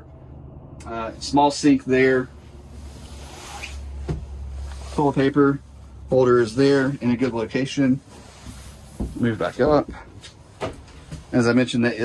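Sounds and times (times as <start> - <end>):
clothing rustle: 2.4 - 6.0, 6.7 - 11.6.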